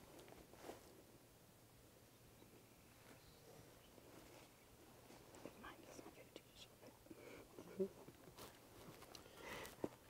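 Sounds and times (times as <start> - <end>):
faint whispering: 5.4 - 7.5.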